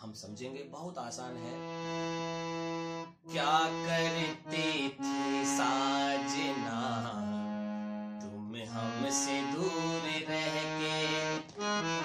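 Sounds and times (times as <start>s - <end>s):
harmonium slow melody: 1.2s - 12.0s
man softly singing: 3.3s - 11.5s.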